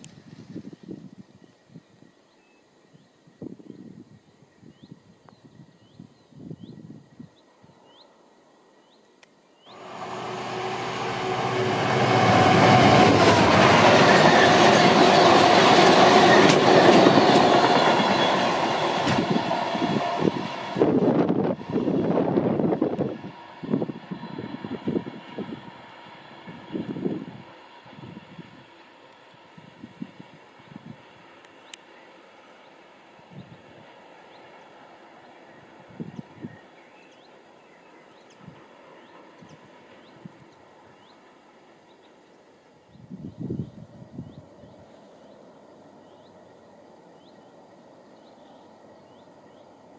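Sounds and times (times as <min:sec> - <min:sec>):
freight train rumbling past: 0:09.7 - 0:41.8
wheels clattering over rail joints: 0:12.3 - 0:19.8.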